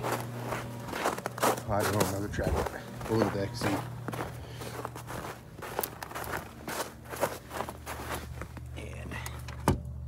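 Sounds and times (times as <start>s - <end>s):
footsteps crunching through snow: 0.0s - 8.7s.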